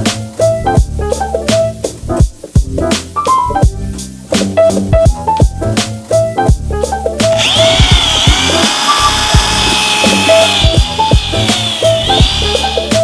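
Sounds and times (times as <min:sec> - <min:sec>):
background music with beat: 0:00.0 - 0:13.0
small electric motor whining: 0:07.3 - 0:13.0.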